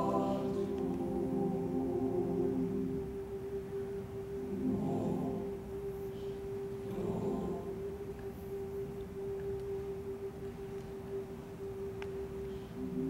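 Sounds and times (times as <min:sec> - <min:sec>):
choir holding a note: 0:00.0 - 0:08.3.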